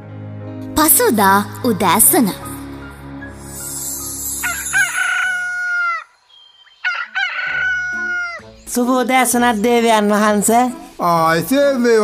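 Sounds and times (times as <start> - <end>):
rooster crowing: 4.4 - 8.5.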